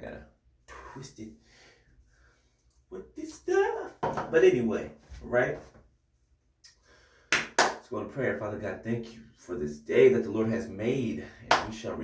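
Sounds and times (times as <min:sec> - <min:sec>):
hand claps: 0:07.3 - 0:07.8, 0:11.5 - 0:11.8.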